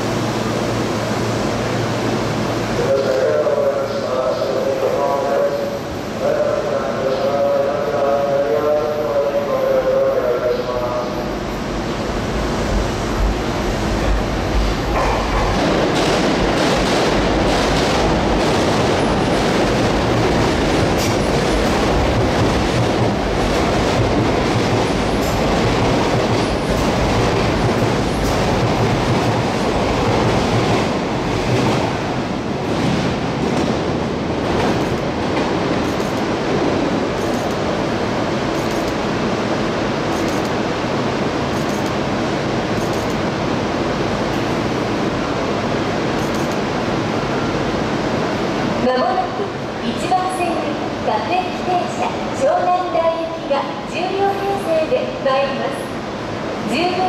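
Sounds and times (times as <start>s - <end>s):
electric train rumbling past: 0.0s - 57.0s
train wheels clicking over rail joints: 34.5s - 36.3s.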